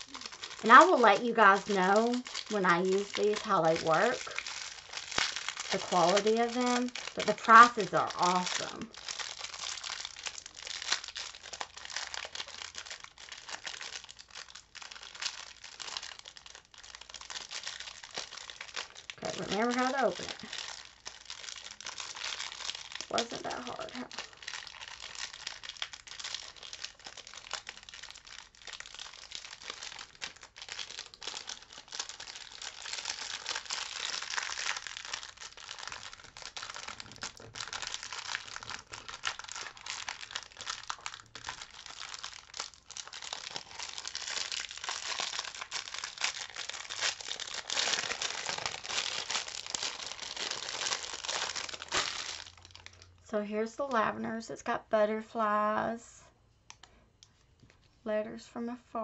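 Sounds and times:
plastic packaging crinkling: 0:00.0 - 0:54.2.

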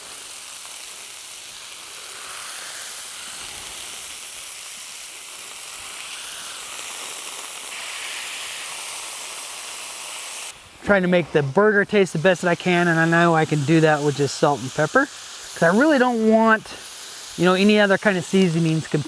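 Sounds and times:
burger patties sizzling on a grill: 0:00.0 - 0:19.0.

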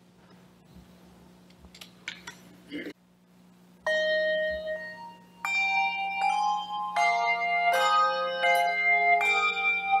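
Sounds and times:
handbell chords ringing: 0:03.9 - 0:10.0.

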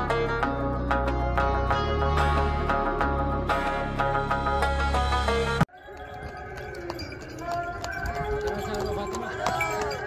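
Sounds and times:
horse hooves on stone paving: 0:05.7 - 0:10.0
people's voices: 0:05.8 - 0:10.0.

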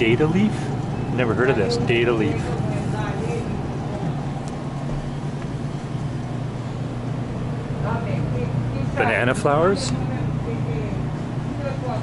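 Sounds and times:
refrigerated display cases humming: 0:00.0 - 0:12.0
store background noise: 0:00.0 - 0:12.0.

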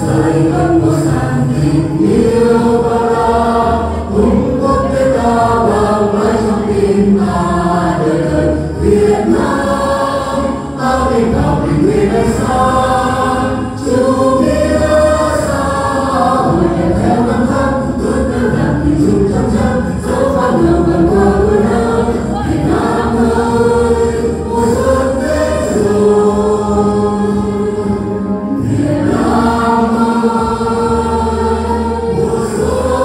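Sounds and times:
group of people singing: 0:00.0 - 0:33.0.

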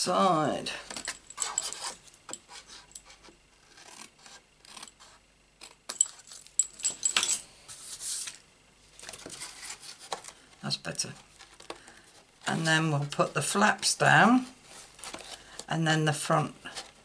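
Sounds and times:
card rustling: 0:14.5 - 0:15.6.

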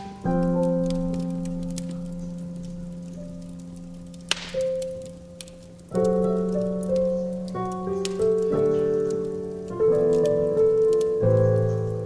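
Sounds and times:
slow piano playing: 0:00.0 - 0:12.0
wood fire crackling: 0:00.0 - 0:12.0.

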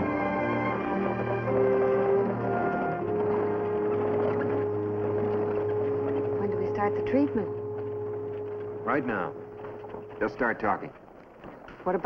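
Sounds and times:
wagon rumbling ride noise: 0:00.0 - 0:12.0
steady low tone: 0:02.0 - 0:11.1.

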